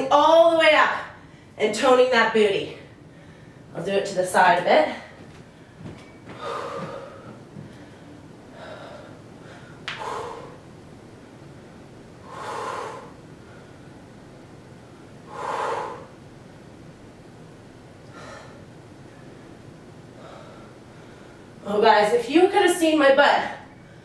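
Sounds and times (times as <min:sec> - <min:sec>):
woman breathing hard: 0:03.0 - 0:03.7, 0:05.1 - 0:10.7, 0:11.4 - 0:14.1, 0:15.2 - 0:16.2, 0:18.1 - 0:18.8, 0:20.1 - 0:21.6.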